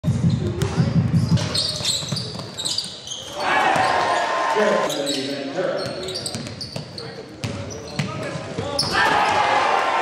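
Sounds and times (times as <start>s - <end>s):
basketball bouncing on gym floor: 0.0s - 3.0s, 5.8s - 9.4s
voices in a hall: 0.3s - 10.0s
short high squeaks: 1.5s - 3.4s.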